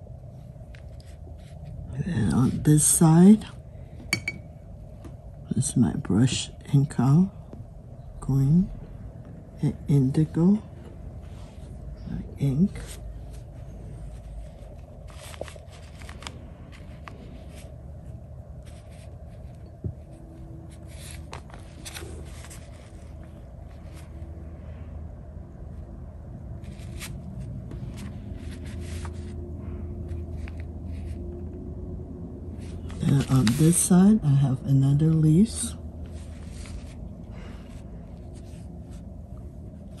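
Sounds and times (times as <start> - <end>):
low hum: 0.0 - 40.0
paper rustling: 12.6 - 24.3, 26.6 - 31.2, 32.6 - 34.2, 36.0 - 39.1.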